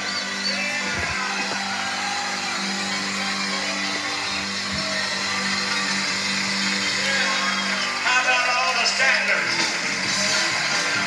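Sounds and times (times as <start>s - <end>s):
gospel music through tv speakers: 0.0s - 11.0s.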